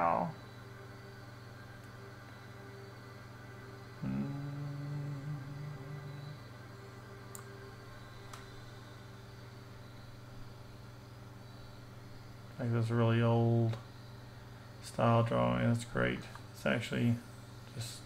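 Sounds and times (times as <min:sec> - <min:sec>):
low held tone: 0:00.0 - 0:14.7
low electrical hum: 0:00.0 - 0:18.0.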